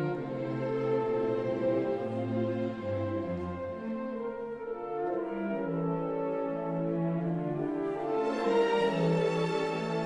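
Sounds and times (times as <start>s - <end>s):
orchestra playing held notes: 0.0s - 10.0s.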